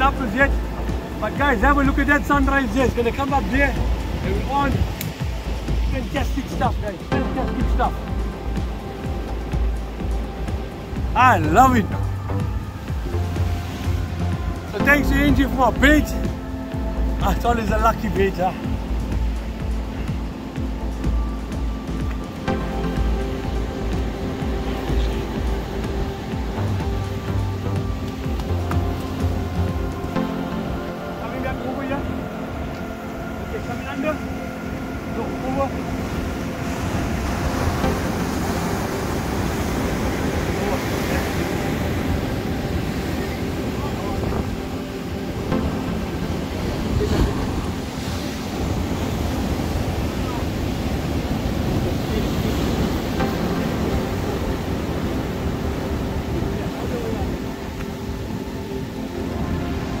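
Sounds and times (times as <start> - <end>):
faint background music: 0.0 - 60.0
ocean surf breaking against pier: 0.0 - 60.0
wind buffeting microphone: 0.0 - 60.0.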